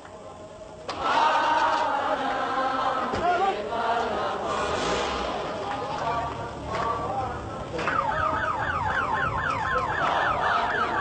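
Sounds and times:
electronic siren yelping: 7.9s - 11.0s.

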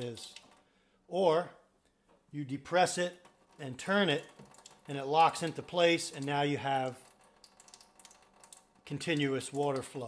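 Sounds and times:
water trickling into metal sink: 3.1s - 10.0s.

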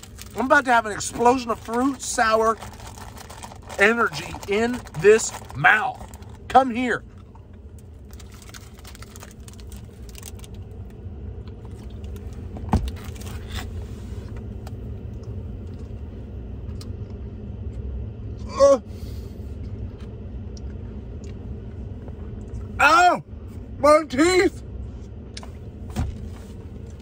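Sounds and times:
low rumble inside truck cabin: 0.0s - 27.0s.

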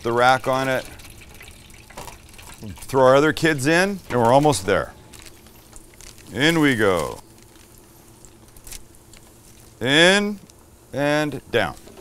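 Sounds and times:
man talking: 0.0s - 0.9s, 2.6s - 5.0s, 6.3s - 7.2s, 9.8s - 11.8s
oil bubbling in deep fryer: 0.0s - 4.7s.

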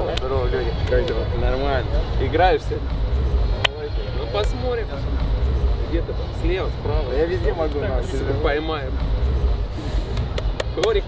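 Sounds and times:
men talking: 0.0s - 11.0s
steady low rumble: 0.0s - 11.0s.

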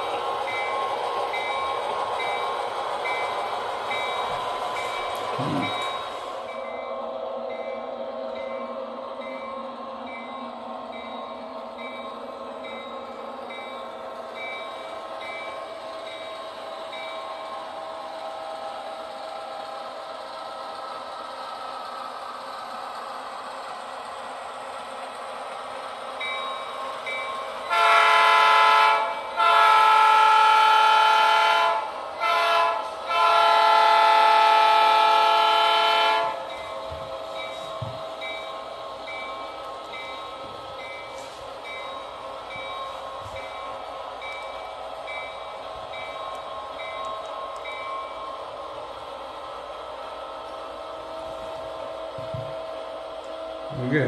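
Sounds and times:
model locomotive engine hum: 0.0s - 54.0s
multi-tone locomotive horn: 27.6s - 36.5s.

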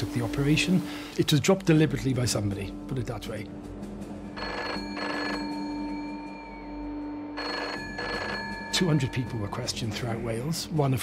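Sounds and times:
telephone double ring: 4.4s - 5.7s, 7.4s - 8.8s.

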